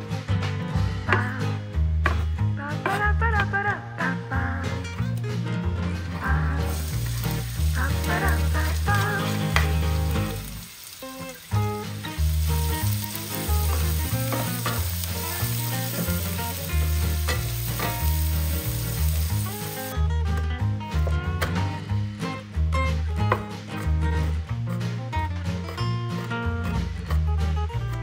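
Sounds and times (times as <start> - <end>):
background music with bass line: 0.0 - 28.0
onion sizzling in hot oil: 6.6 - 20.0.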